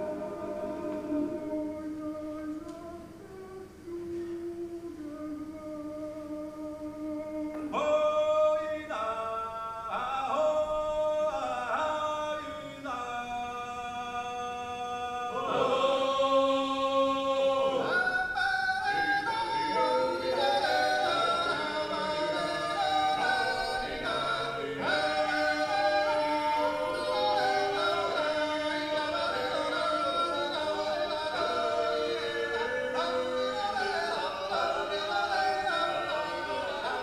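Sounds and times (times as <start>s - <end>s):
male choir singing a cappella: 0.0s - 37.0s.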